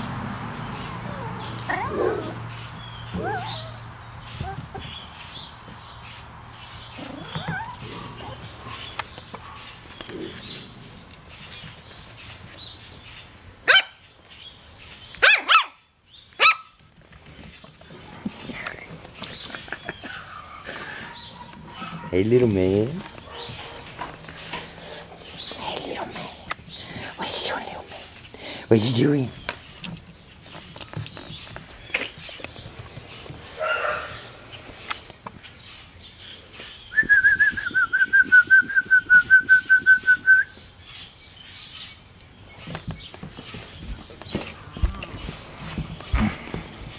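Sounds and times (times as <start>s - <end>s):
puppies yipping: 0.6s - 5.2s, 6.9s - 9.8s
puppy yipping: 3.1s - 4.8s, 7.0s - 7.8s.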